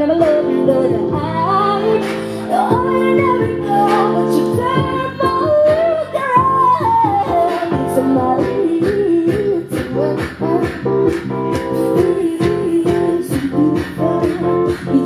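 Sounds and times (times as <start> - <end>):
drum beat: 0.0 - 15.0
guitar: 0.0 - 15.0
woman singing: 0.0 - 15.0.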